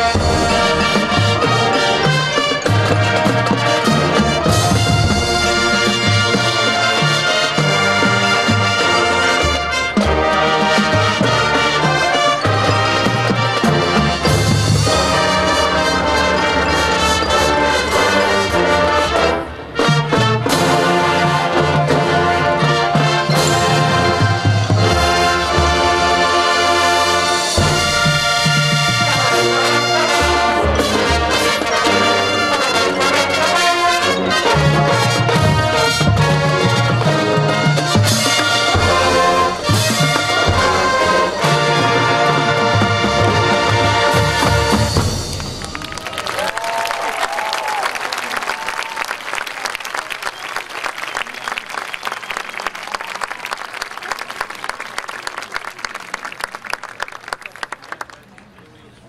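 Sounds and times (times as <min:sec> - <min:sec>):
marching band playing: 0:00.0 - 0:57.8
crowd applauding and cheering: 0:45.0 - 0:58.8.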